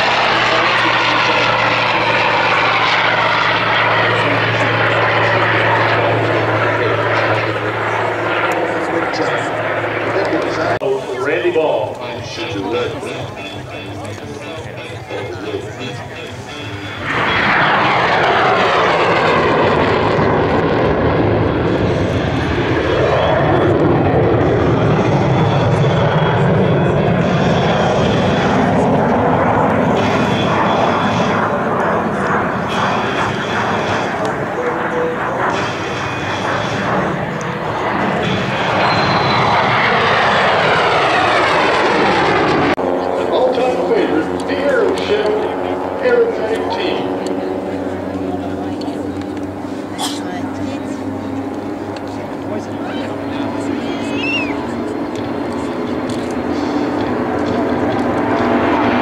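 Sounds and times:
jet fighter passing in afterburner: 0.0s - 59.0s.

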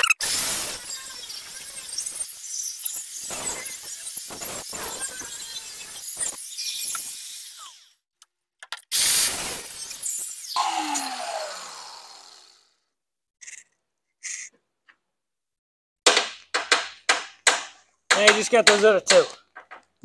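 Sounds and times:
cut-off tool grinding metal: 0.2s - 8.0s
motor winding down: 9.0s - 12.8s.

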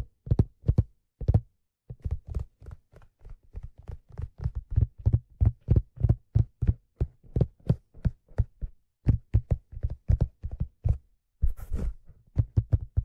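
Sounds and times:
fingertips tapping on leather hat: 0.0s - 13.0s.

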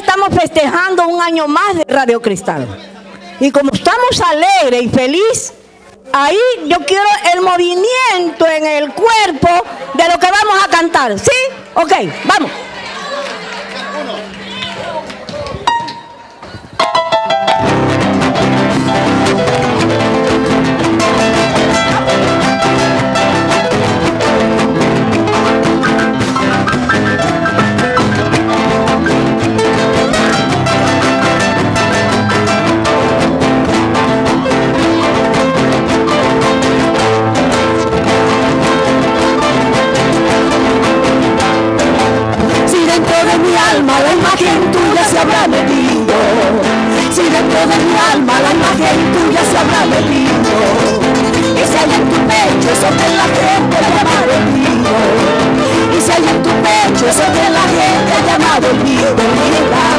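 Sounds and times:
live band playing: 11.5s - 59.9s
guitar lick: 15.6s - 59.9s.

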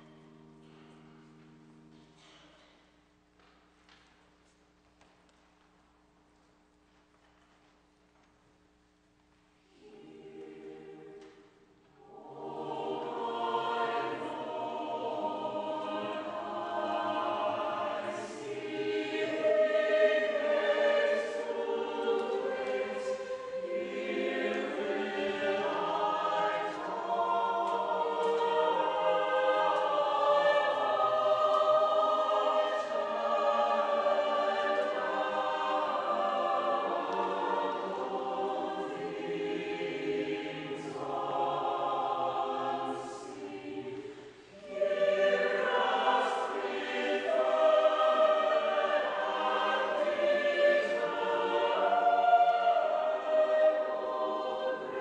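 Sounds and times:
church choir singing: 0.0s - 2.9s, 9.6s - 55.0s.

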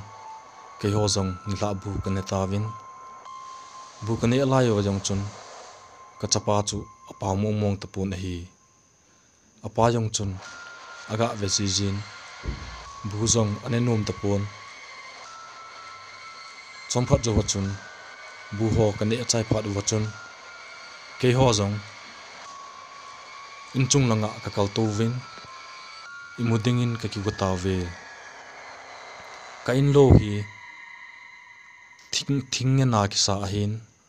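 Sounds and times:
faint steady hum with thin tones: 0.0s - 34.0s
person telling a story: 0.8s - 2.8s, 4.0s - 5.3s, 6.2s - 8.5s, 11.1s - 14.5s, 16.9s - 17.8s, 18.5s - 20.1s, 23.8s - 25.2s, 26.4s - 28.0s, 29.7s - 30.5s.

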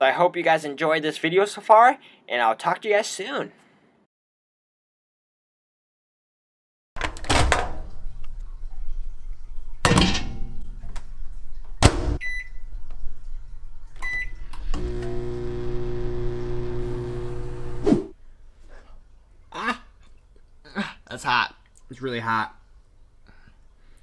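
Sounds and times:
microwave humming: 14.0s - 17.9s.

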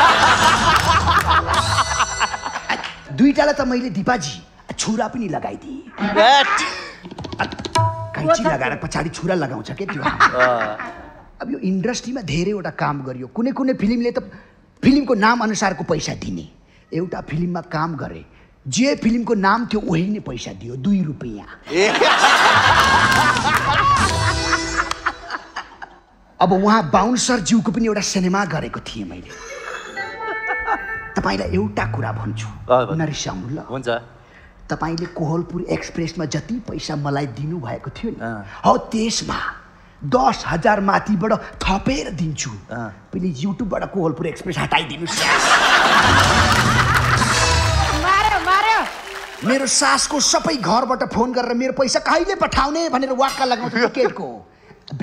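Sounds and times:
audience clapping: 0.0s - 1.8s, 2.7s - 3.1s, 22.2s - 25.3s, 45.7s - 50.3s
studio audience laughing: 0.0s - 3.1s, 9.8s - 11.2s, 21.7s - 26.2s, 45.1s - 48.4s
person speaking: 30.0s - 34.1s.

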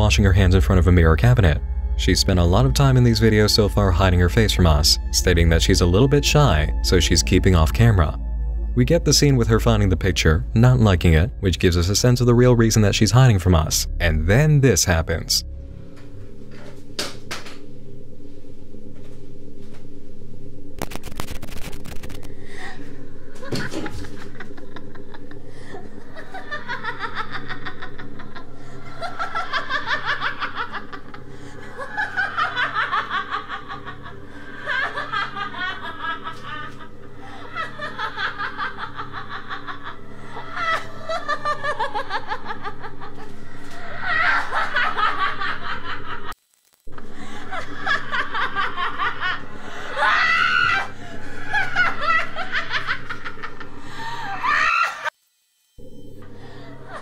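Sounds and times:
steady low hum: 0.0s - 54.8s, 55.8s - 57.0s
evil laughter: 23.4s - 46.3s, 47.0s - 55.1s, 56.4s - 57.0s.

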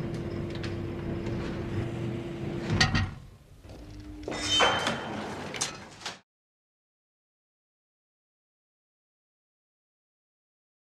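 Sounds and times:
steady background hum: 0.0s - 6.2s.

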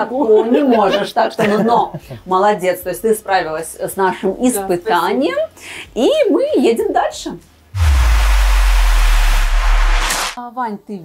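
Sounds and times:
deep bass drone: 7.8s - 10.4s
hiss: 7.8s - 10.4s.

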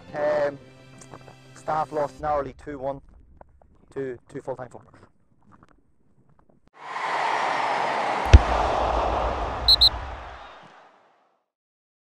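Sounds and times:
short high blips: 9.7s - 9.9s.

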